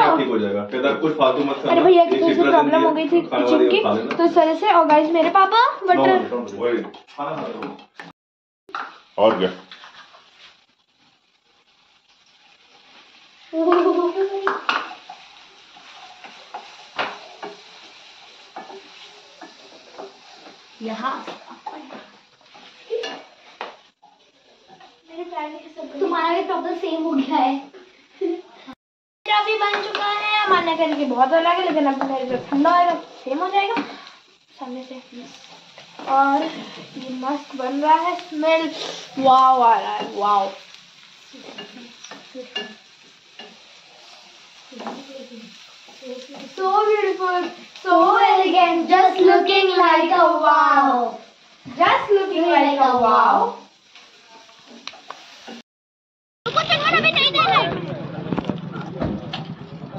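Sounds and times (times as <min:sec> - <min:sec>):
faint frying sizzle: 0:00.0 - 0:07.6, 0:08.7 - 0:55.6, 0:56.5 - 0:57.6
wooden spatula scraping a pan: 0:08.8 - 0:26.2, 0:29.6 - 0:49.5.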